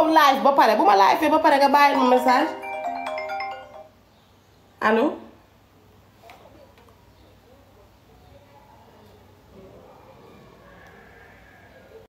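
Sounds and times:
phone ringtone chimes: 2.0 - 4.0.

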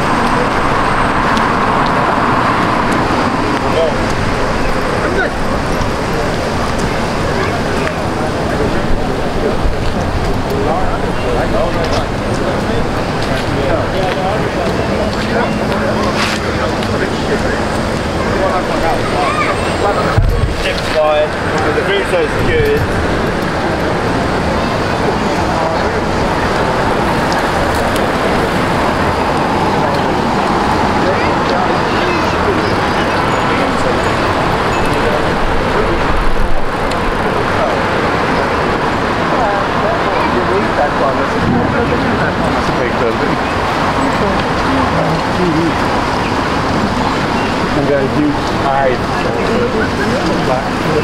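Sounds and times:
people talking: 0.0 - 51.0
road traffic passing: 0.0 - 51.0.

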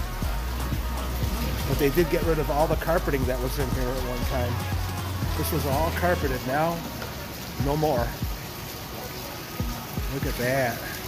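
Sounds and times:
music with low thump: 0.0 - 8.5, 9.6 - 10.4
waterfall splashing into pond: 0.0 - 11.0.

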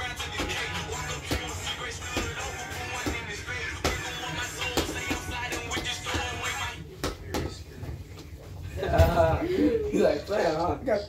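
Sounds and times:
rumble of bodies shifting: 7.5 - 10.2.

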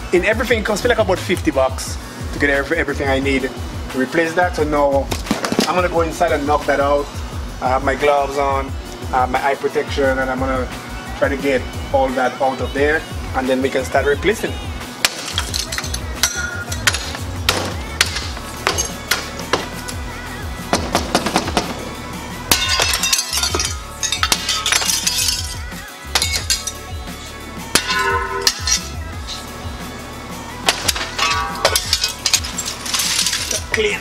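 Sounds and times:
glass cracking and smashing: 15.0 - 19.4, 22.5 - 26.9, 27.8 - 29.0, 30.7 - 33.9.

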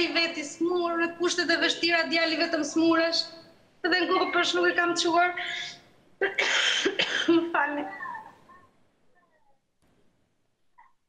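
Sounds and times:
woman sobbing and whimpering: 3.9 - 5.8.

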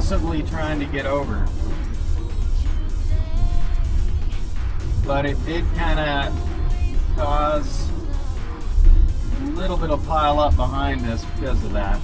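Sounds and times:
low rumble of road noise: 0.0 - 12.0
soft background music: 0.0 - 12.0.

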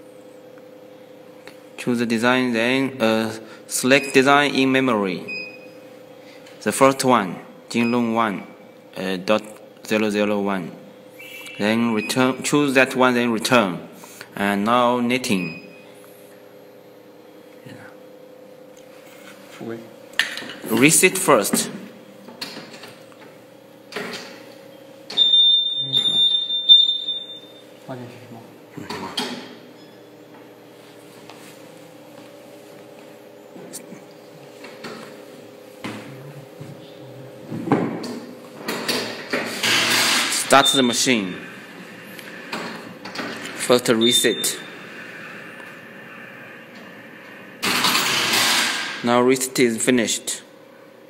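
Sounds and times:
high-pitched warning beep: 11.2 - 12.3, 25.1 - 27.7, 40.6 - 41.1, 43.8 - 44.8.

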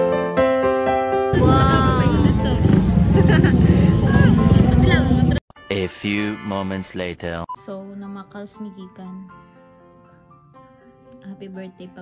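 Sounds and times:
street noise rumble: 1.3 - 5.4.

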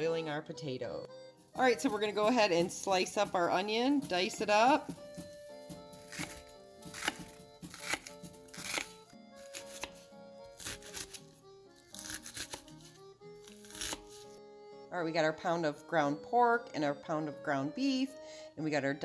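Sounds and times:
background music: 0.0 - 19.0
knife chopping on wooden board: 2.0 - 11.3, 11.9 - 14.3.

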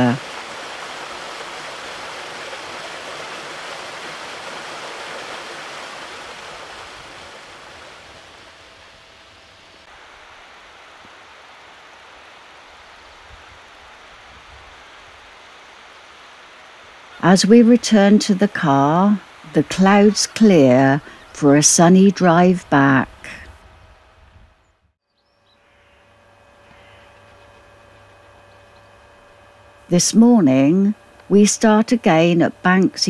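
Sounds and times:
stream running over rocks: 0.0 - 8.3
outdoor hiss: 0.0 - 24.4, 25.1 - 33.0.

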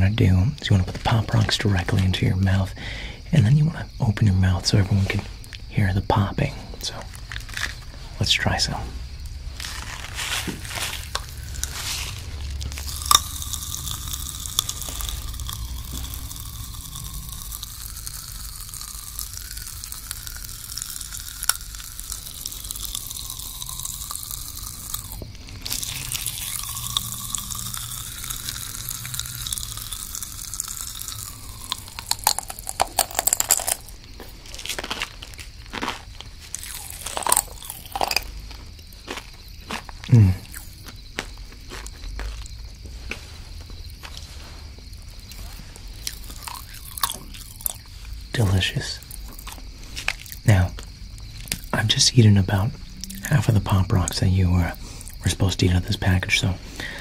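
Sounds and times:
mouth chewing and crunching: 0.0 - 57.0
popping candy crackling in mouth: 6.8 - 57.0.

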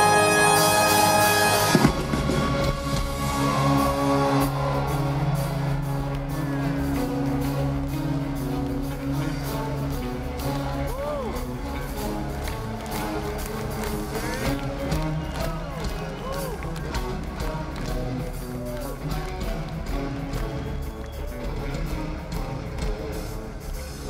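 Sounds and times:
rock band drums and bass: 1.2 - 24.0.

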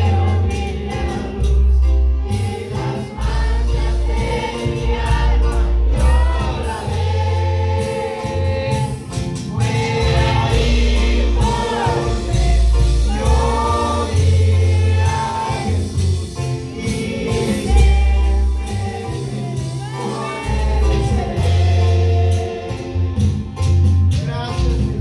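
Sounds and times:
band with keyboard and drums: 0.0 - 25.0
pulsing bass line: 0.0 - 25.0
man singing into microphone: 7.7 - 16.0.

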